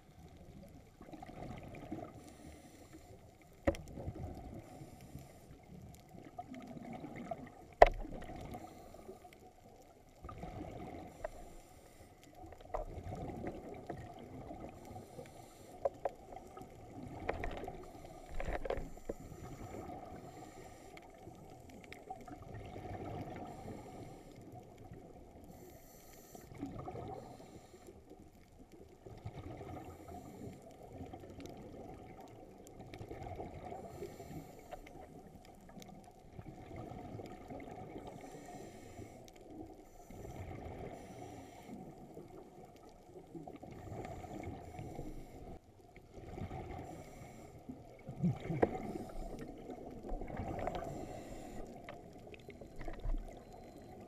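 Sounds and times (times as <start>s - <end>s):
muffled underwater rush of water: 0.0s - 54.0s.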